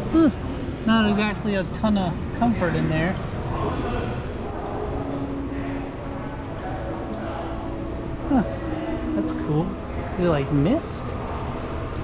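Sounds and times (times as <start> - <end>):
steady indoor hum: 0.0 - 12.0
indistinct background voices: 3.2 - 12.0.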